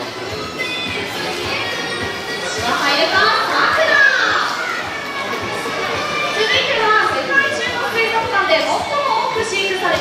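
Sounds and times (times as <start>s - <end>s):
crowd crying out excitedly: 0.0s - 10.0s.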